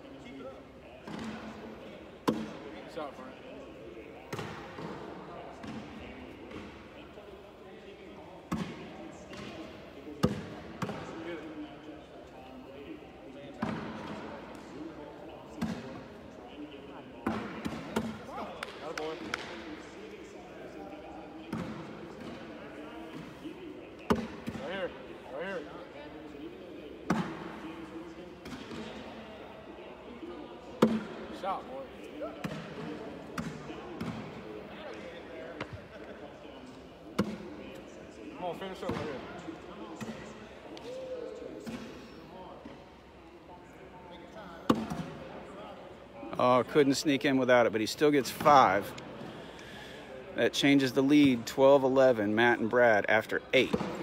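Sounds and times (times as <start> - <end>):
murmur of voices in a hall: 0.0 - 54.0.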